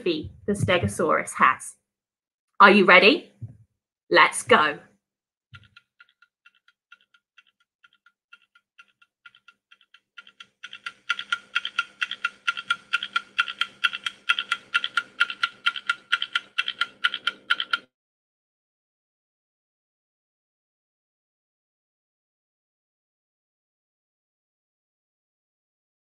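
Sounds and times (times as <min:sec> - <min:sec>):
countdown timer ticking: 0:06.5 - 0:17.8.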